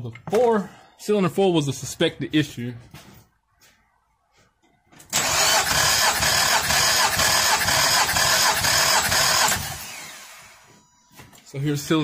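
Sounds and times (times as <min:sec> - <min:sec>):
engine cranking on starter: 0:05.1 - 0:10.6.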